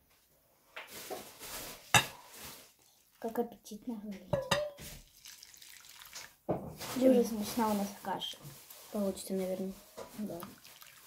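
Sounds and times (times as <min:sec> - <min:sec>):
metal pan clank: 0:04.3 - 0:04.8
milk pouring from saucepan: 0:04.4 - 0:07.8, 0:09.8 - 0:11.0.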